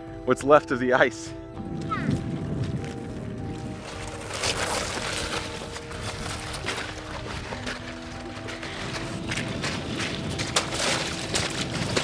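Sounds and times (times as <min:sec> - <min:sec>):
slow held-note background music: 0:00.0 - 0:12.0
sled runners scraping on ice: 0:01.8 - 0:12.0.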